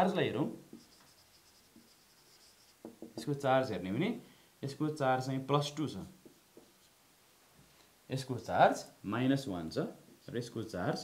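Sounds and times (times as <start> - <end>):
marker pen on whiteboard: 0.0 - 3.5, 5.9 - 7.0.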